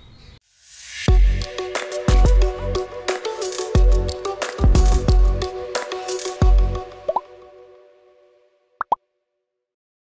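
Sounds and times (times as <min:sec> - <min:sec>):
rising pop sound effects: 0:07.1 - 0:07.3, 0:08.8 - 0:09.0.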